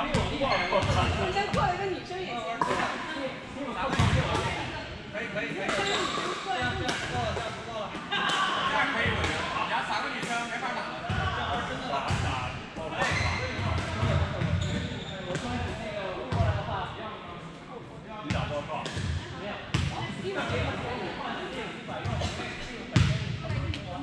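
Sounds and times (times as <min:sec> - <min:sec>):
indistinct chatter of players: 0:00.0 - 0:24.0.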